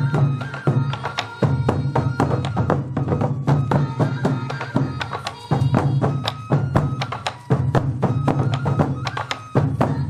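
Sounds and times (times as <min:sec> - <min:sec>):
flute-like melody: 0:00.0 - 0:10.0
taiko drums in fast rhythm: 0:00.0 - 0:10.0.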